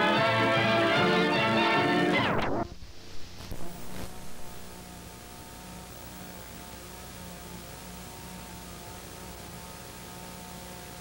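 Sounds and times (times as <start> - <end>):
theme music with pitch sliding down: 0.0 - 2.7
low hum: 2.1 - 7.1.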